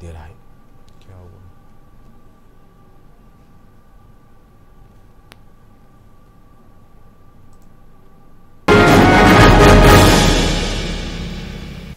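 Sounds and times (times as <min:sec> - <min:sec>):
low hum and hiss: 0:00.0 - 0:11.9.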